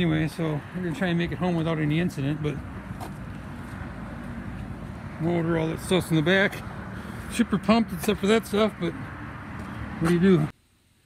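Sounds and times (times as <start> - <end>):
low rumble of vehicles: 0.0 - 10.6.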